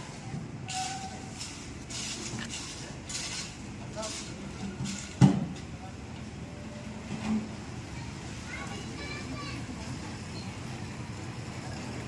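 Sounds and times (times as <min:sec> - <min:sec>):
distant voices: 0:00.0 - 0:12.0
short scraping noises: 0:00.6 - 0:05.3.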